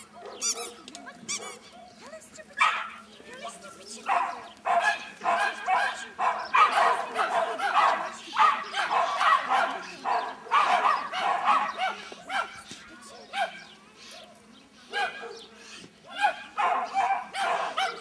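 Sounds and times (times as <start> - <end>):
dog barking and yelping: 0.0 - 2.0, 2.6 - 3.0, 4.1 - 12.7, 14.9 - 15.4, 16.1 - 18.0.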